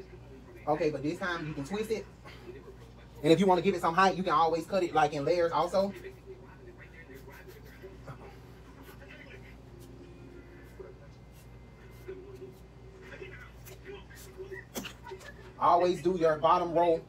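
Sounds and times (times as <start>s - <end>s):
faint background voices: 0.0s - 4.7s, 5.4s - 15.9s.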